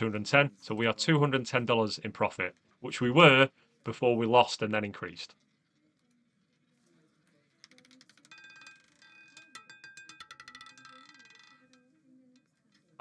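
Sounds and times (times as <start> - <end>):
roulette ball clattering on wheel: 5.2 - 13.0.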